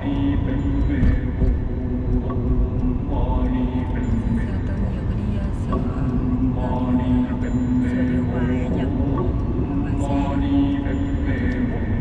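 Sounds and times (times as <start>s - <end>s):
song with singing voice: 0.0s - 12.0s.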